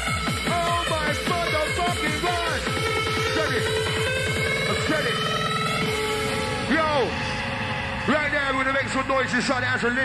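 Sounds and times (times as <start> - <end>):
trance music kick drum: 0.0 - 10.0.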